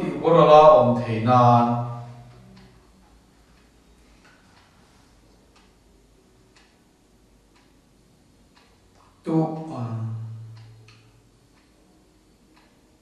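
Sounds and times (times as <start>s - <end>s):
clock ticking faintly: 0.0s - 13.0s.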